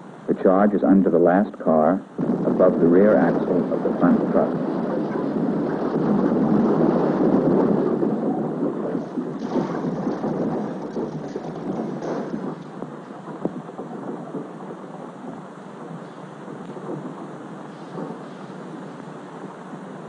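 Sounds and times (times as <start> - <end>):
crackles: 0.0 - 20.0
explosion rumble: 0.3 - 20.0.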